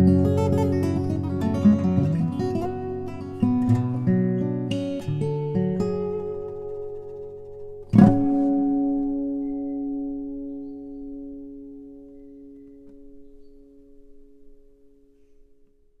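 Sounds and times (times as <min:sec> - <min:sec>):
acoustic guitar chord ringing: 0:00.0 - 0:15.7.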